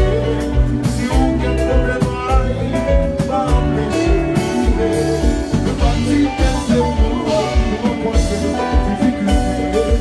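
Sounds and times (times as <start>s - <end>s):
electric guitar: 0.0s - 10.0s
keyboard lines: 0.0s - 10.0s
steady drumbeat: 0.0s - 10.0s.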